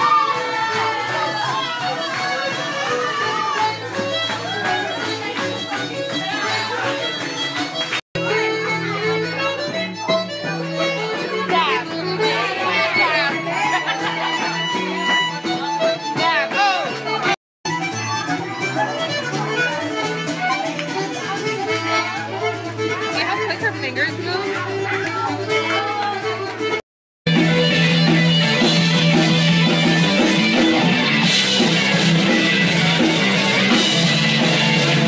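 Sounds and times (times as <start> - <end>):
pub crowd chatter: 0.0 - 35.0
button accordion playing a tune: 1.8 - 26.8.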